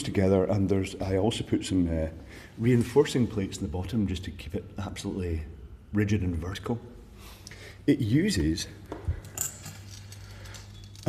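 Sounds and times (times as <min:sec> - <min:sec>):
small metallic clink: 0:09.1 - 0:11.0.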